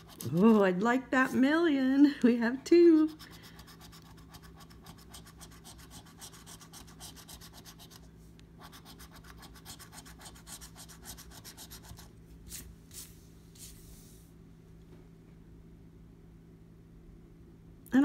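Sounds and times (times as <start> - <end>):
coin scratching lottery ticket: 0.0 - 0.5.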